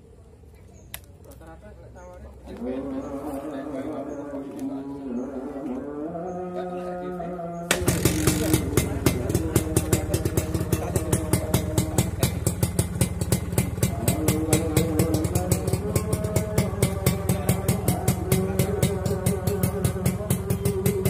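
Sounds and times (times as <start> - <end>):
two-stroke engine idling: 7.7 - 21.0.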